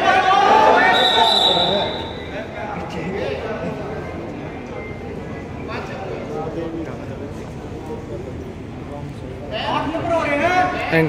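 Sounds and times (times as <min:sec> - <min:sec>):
high whistle-like tone: 0:00.8 - 0:02.3.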